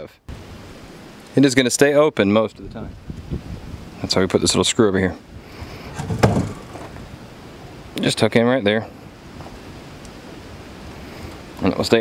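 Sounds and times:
low background hiss: 0.0s - 12.0s
wooden door knock or rattle: 5.9s - 7.0s.

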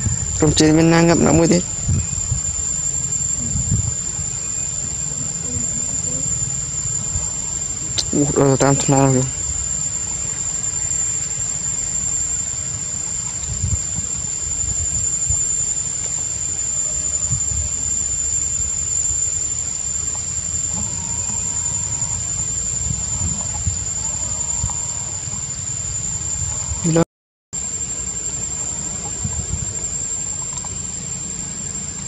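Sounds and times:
low rumble: 0.0s - 10.8s
insects droning: 0.0s - 27.0s, 27.6s - 32.0s.

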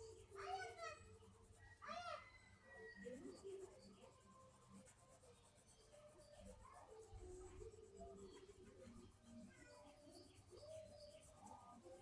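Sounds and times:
pencil scratching on paper: 0.0s - 1.8s, 2.9s - 12.0s.

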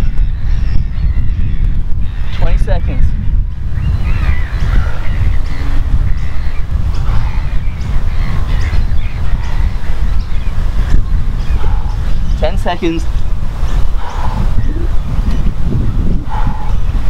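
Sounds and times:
birds calling: 0.0s - 17.0s
wind buffeting microphone: 0.0s - 17.0s.

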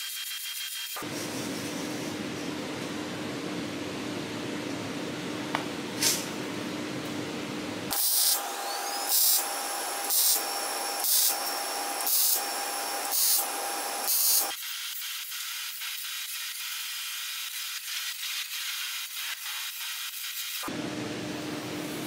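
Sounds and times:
welder arc hissing and crackling: 7.9s - 20.7s.

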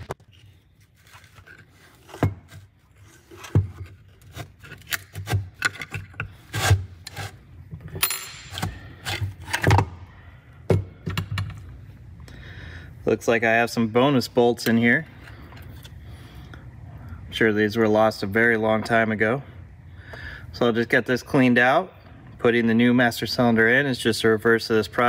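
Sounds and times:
wrench scraping and clinking: 7.0s - 9.8s.

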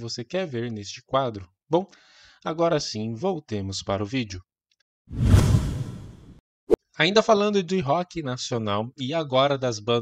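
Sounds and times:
whoosh: 5.1s - 6.4s.

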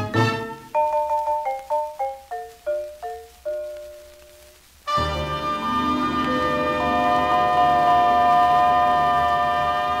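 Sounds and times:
wind instruments holding chord: 4.9s - 10.0s.

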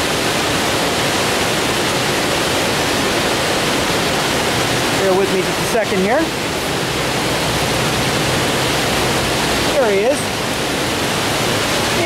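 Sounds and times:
water pouring over a dam: 0.0s - 12.0s.

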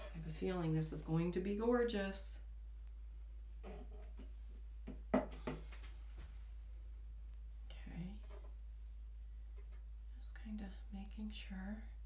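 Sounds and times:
steady low hum: 0.0s - 12.0s
woman speaking softly: 7.7s - 8.3s, 10.1s - 12.0s.

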